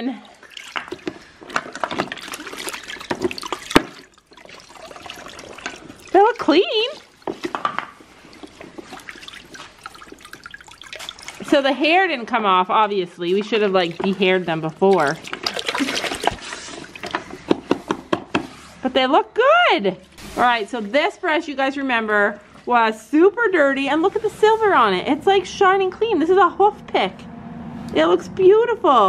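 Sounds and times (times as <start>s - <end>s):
brushes splashing in water bucket: 0.0s - 18.7s.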